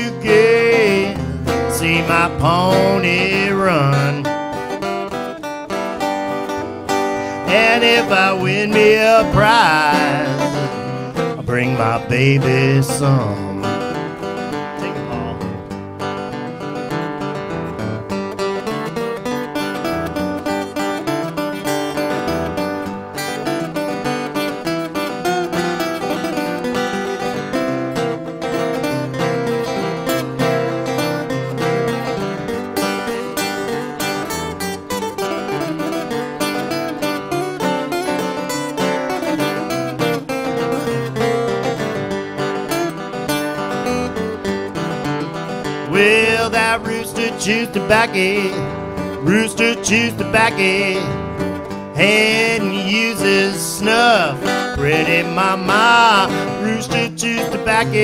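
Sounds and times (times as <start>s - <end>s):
acoustic guitars playing blues: 0.0s - 58.0s.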